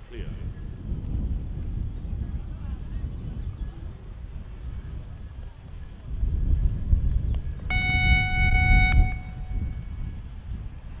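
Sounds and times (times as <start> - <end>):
high electronic signal tone: 7.7 - 9.8.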